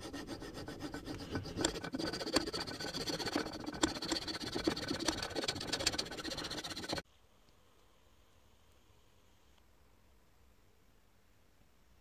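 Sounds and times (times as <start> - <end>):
hand saw cutting wood: 0.0 - 7.0.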